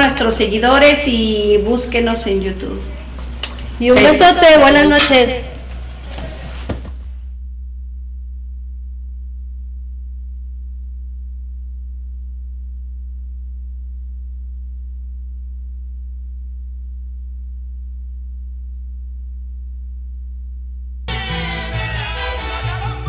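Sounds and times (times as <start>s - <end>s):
low electrical hum: 0.0s - 21.1s.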